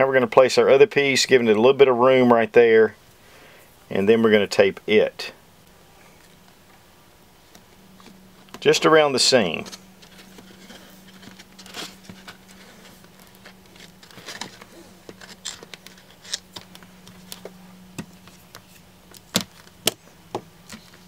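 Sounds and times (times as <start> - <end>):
electrical tape being wrapped: 9.6 - 17.5
thin plastic crinkling: 9.6 - 19.9.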